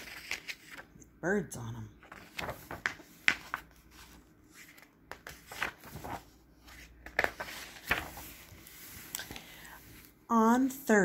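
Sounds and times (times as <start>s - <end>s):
paper pages rustling: 0.0s - 0.9s, 2.0s - 9.4s.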